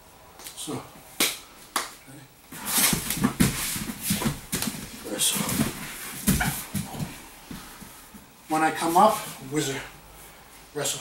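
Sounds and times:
sharp slaps: 1.2 - 2.0
bodies scuffling on a mat: 2.5 - 9.5.

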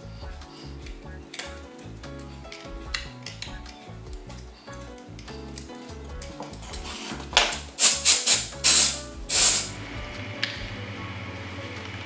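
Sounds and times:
background music: 0.0 - 12.0
short sharp hissing bursts: 7.8 - 9.8.

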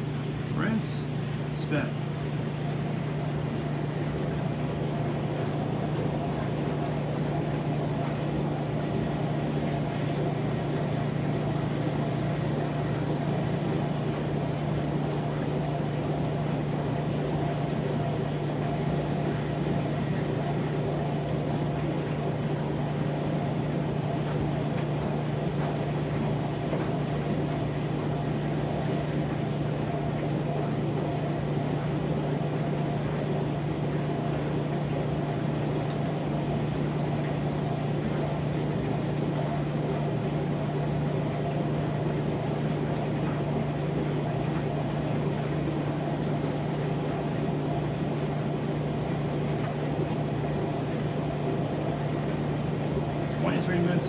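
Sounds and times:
washing machines humming: 0.0 - 54.0.

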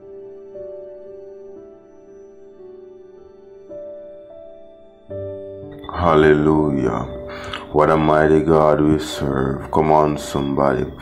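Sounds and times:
soft sustained chords music: 0.0 - 11.0.

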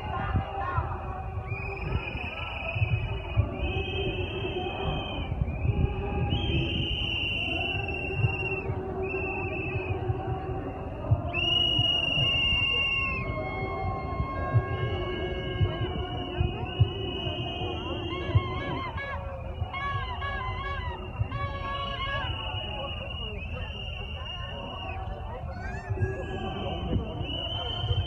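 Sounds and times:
crowd walking: 0.0 - 28.0
whistles blowing: 1.4 - 10.3, 11.3 - 28.0.

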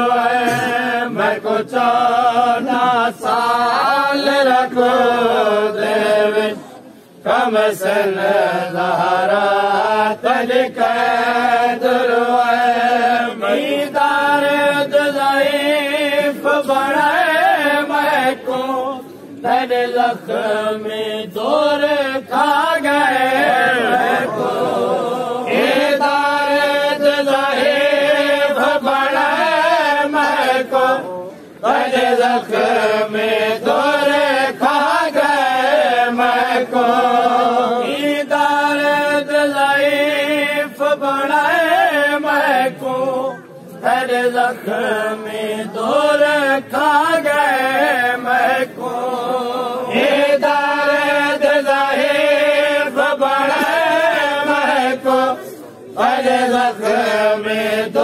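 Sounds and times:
men chanting a lament: 0.0 - 58.0.

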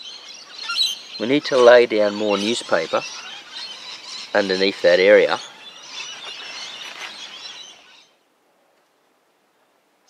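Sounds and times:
small birds chirping: 0.0 - 8.2.

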